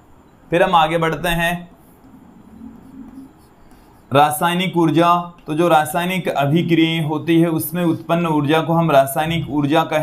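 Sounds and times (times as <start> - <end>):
chalk scratching on chalkboard: 2.6 - 4.1.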